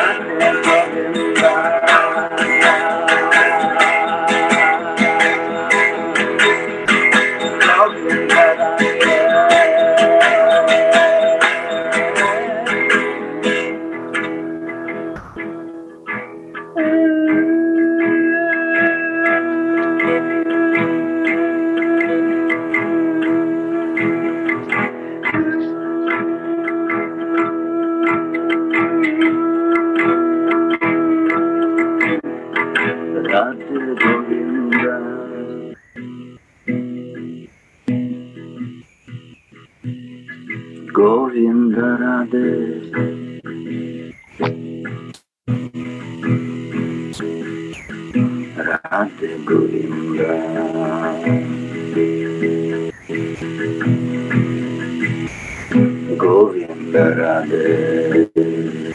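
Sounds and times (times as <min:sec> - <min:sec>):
man singing devotional song: 0:00.0 - 0:06.6, 0:07.4 - 0:15.6, 0:33.2 - 0:35.7, 0:40.9 - 0:43.0, 0:48.6 - 0:51.6, 0:56.1 - 0:58.9
strummed acoustic guitar: 0:00.0 - 0:58.9.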